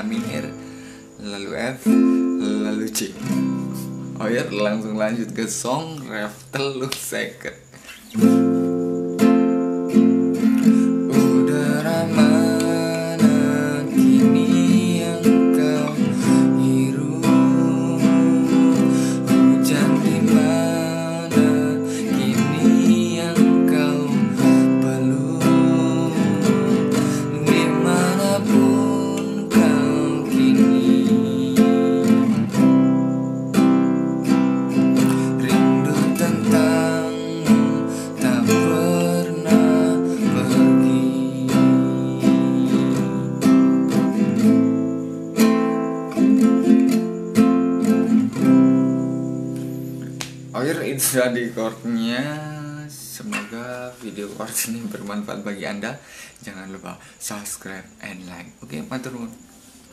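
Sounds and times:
acoustic guitar strumming: 0:00.0 - 0:55.8.

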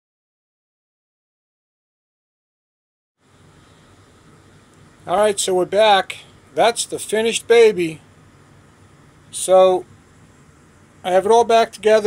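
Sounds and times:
low hum: 0:03.2 - 0:12.0.

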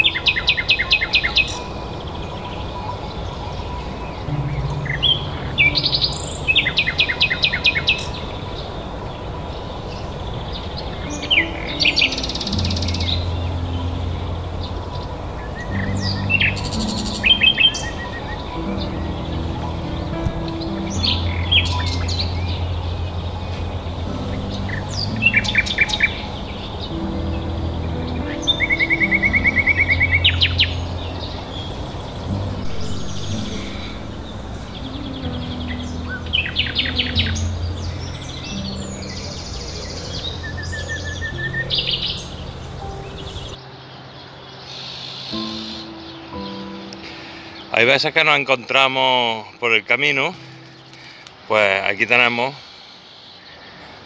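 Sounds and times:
soft background music: 0:00.0 - 0:53.8
songbird singing with trills: 0:00.0 - 0:54.0.

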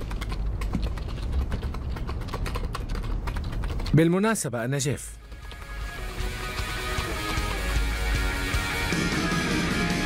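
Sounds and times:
rapid typing on computer keyboard: 0:00.0 - 0:04.5, 0:05.2 - 0:07.8.

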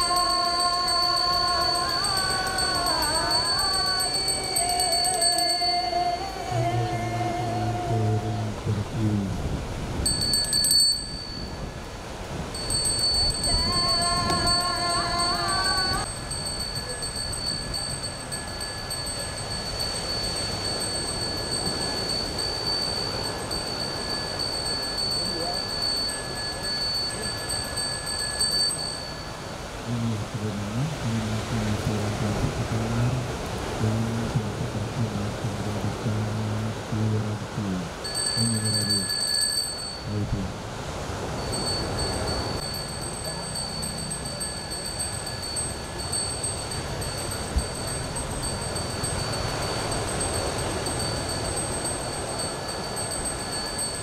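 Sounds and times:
hand bell ringing: 0:00.0 - 0:05.9, 0:10.1 - 0:11.7, 0:12.5 - 0:29.5, 0:38.0 - 0:40.1, 0:41.2 - 0:54.0
low voice chanting: 0:00.0 - 0:09.7, 0:13.0 - 0:54.0.

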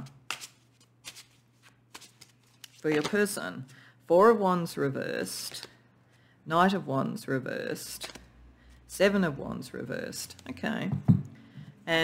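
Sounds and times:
faint card rustles: 0:00.3 - 0:03.3.

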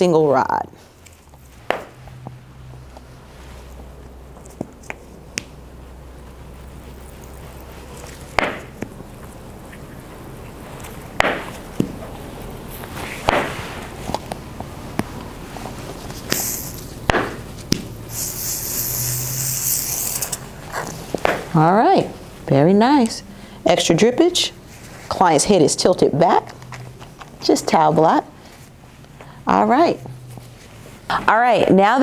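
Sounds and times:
hissing spray: 0:16.3 - 0:16.9, 0:18.1 - 0:20.6
plastic bottle squirting: 0:18.1 - 0:20.9.

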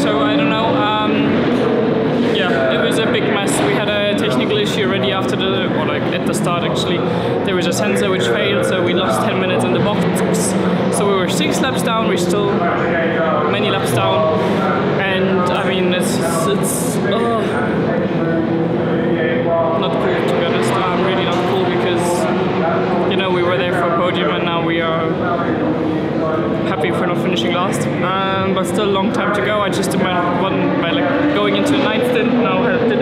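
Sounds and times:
background murmur: 0:00.0 - 0:33.0
voices talking: 0:00.0 - 0:33.0.

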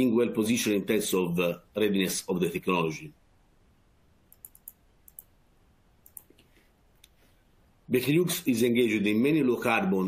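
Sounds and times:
faint computer clicks: 0:04.3 - 0:05.4, 0:06.0 - 0:07.2.

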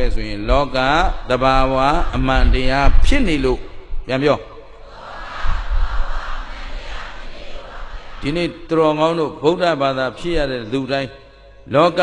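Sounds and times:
man preaching into a microphone: 0:00.0 - 0:04.7, 0:08.2 - 0:12.0.

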